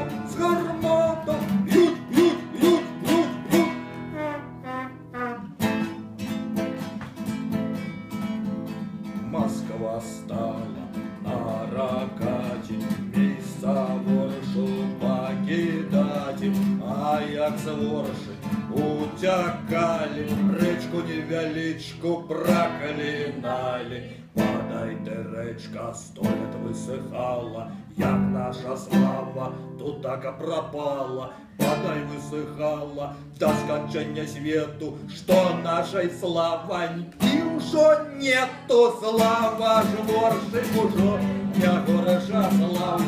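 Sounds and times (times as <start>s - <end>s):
man singing: 0.0s - 5.5s, 9.1s - 43.0s
acoustic guitar strumming: 0.0s - 43.0s.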